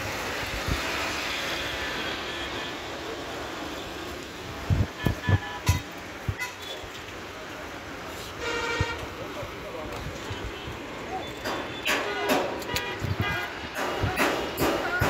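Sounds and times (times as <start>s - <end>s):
voices: 3.0s - 15.0s
vehicle horn toot: 5.0s - 6.8s, 8.4s - 9.0s, 11.9s - 13.6s.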